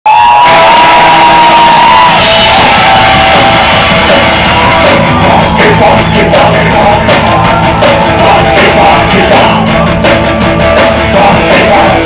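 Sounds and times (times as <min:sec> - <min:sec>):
live band playing loud: 0:00.1 - 0:12.0.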